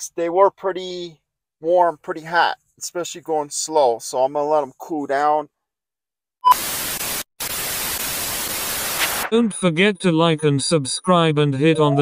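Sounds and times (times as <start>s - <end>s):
white-noise static hiss: 6.6s - 9.3s.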